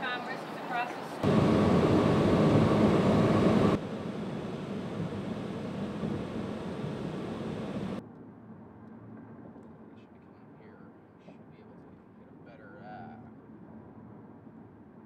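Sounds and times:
car road noise on highway: 1.2 - 8.0
wind rushing on microphone: 1.2 - 8.0.

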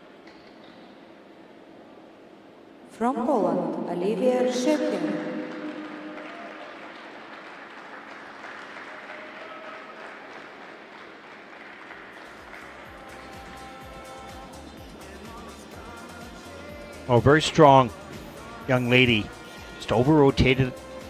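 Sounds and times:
audience applause: 5.2 - 13.8
background music with low beat: 12.3 - 21.0.

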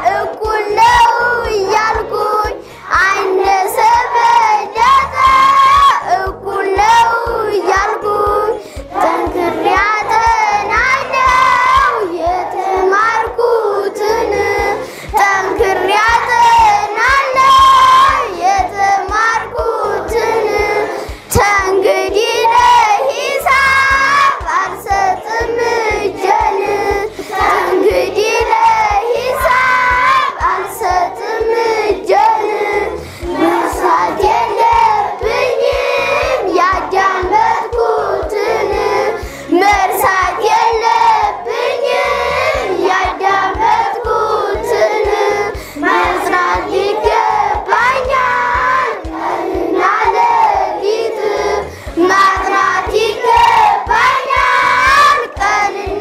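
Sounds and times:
children singing in unison: 0.0 - 56.0.

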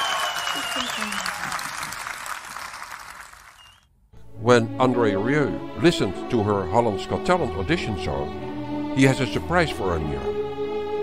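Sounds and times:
audience applause: 0.0 - 3.8.

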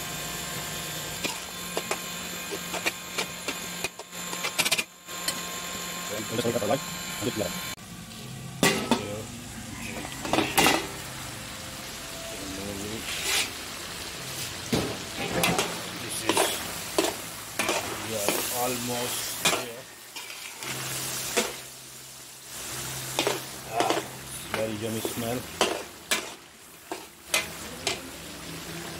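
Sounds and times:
frying sizzle: 0.0 - 28.9
metal spatula scraping a pan: 13.0 - 13.7, 14.4 - 21.7, 22.5 - 28.1.

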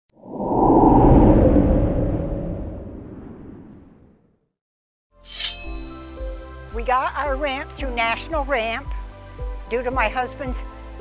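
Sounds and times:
whoosh with low rumble: 0.1 - 4.5.

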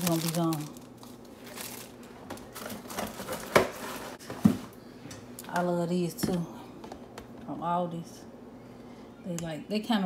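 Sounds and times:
food packaging crinkling: 0.0 - 4.2.

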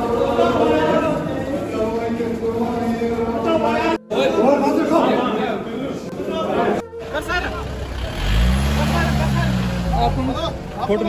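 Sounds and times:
men's voices: 0.0 - 11.0
van engine revving: 7.0 - 11.0.

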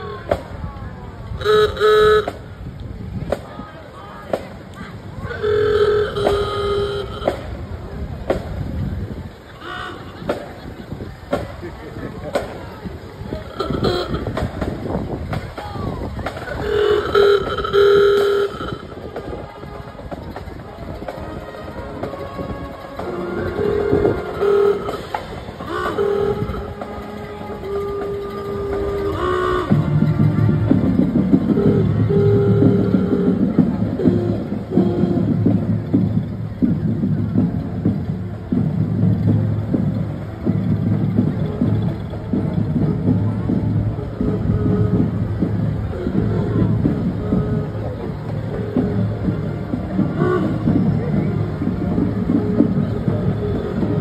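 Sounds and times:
held horn-like tones: 1.3 - 2.7, 4.8 - 7.8, 9.6 - 10.5, 12.3 - 14.8, 16.3 - 36.6, 37.3 - 54.0.

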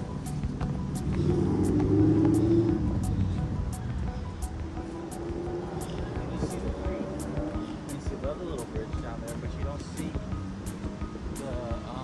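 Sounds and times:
motor vehicle passing: 0.1 - 11.4.

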